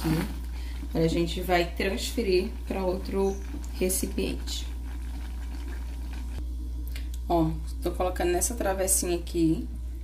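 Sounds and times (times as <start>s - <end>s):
spatula stirring thick filling: 0.0s - 6.4s
steady low hum: 0.0s - 10.0s.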